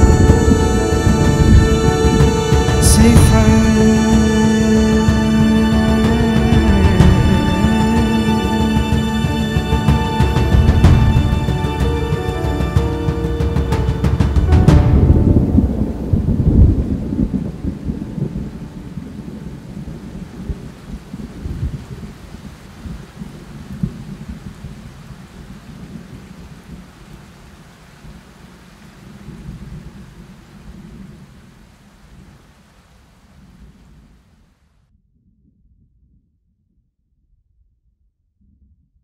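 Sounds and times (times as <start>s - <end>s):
orchestral chord: 0.0s - 20.7s
thunder rumbling: 0.0s - 34.4s
steady rain: 0.0s - 34.8s.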